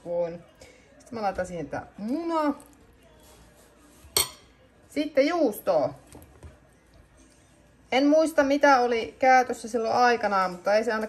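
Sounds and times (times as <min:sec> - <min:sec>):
metal fork clinking on plate: 0:04.2 - 0:04.5.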